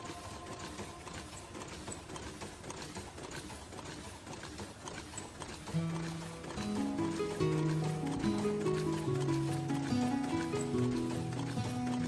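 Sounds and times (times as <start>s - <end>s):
machine clattering: 0.0s - 12.0s.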